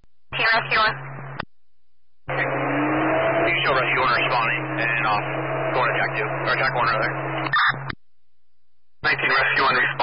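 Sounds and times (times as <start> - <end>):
radio static and hum: 0.4 - 1.5, 2.3 - 8.0, 9.0 - 10.0
siren sweeping in pitch: 2.3 - 7.7.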